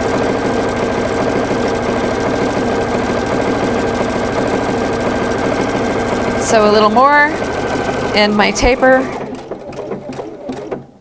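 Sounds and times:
sewing machine stitching: 0:00.0 - 0:11.0.

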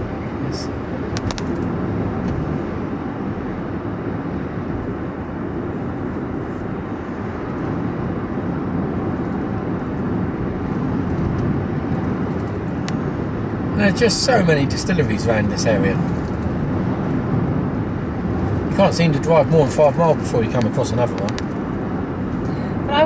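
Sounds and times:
road and engine rumble: 0:00.0 - 0:23.0.

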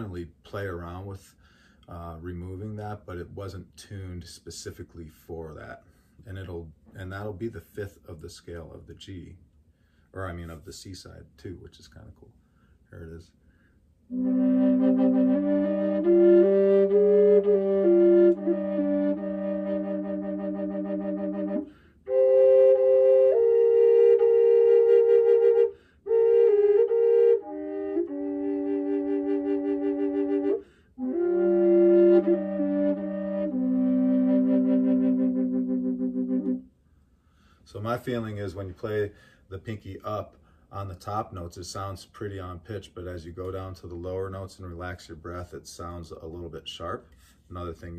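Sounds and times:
drone flute melody: 0:14.1 - 0:36.7.

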